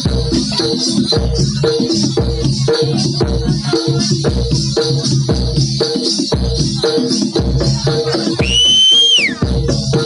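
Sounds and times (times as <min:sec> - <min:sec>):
shrill whistle blown: 0:08.4 - 0:09.4.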